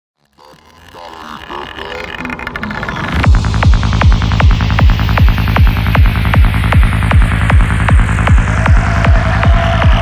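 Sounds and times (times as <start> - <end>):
rolling bassline: 0.3 - 10.0
rising synth sweep: 0.4 - 10.0
kick drum: 3.3 - 10.0.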